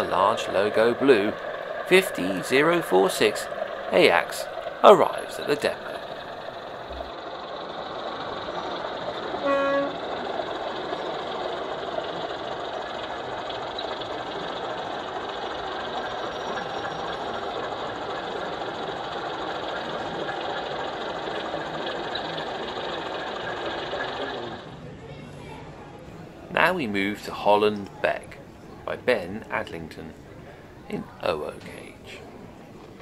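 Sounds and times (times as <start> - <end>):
model train horn toot: 9.4 - 10.0.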